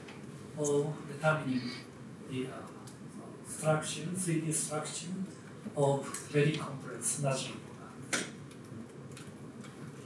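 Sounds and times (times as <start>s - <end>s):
person speaking: 0.6s - 8.1s.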